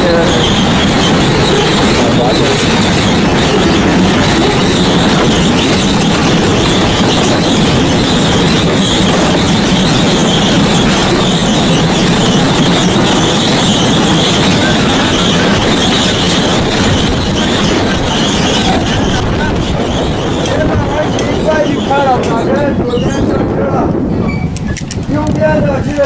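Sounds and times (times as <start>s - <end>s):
high-pitched whine: 0.0s - 23.2s
cart wheels rolling on track: 0.0s - 26.0s.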